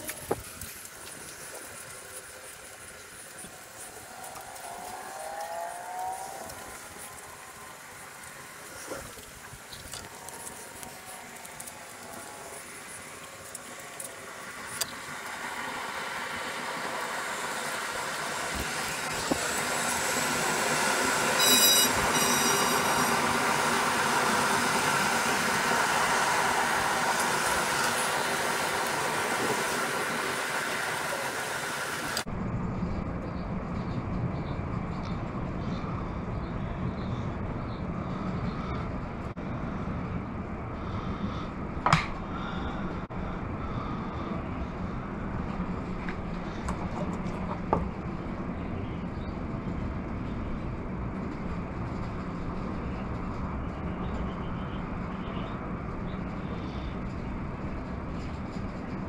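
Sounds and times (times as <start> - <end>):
dull steady rumble: 0.0 - 59.0
passing vehicle rumble: 1.0 - 59.0
squeal: 21.4 - 23.2.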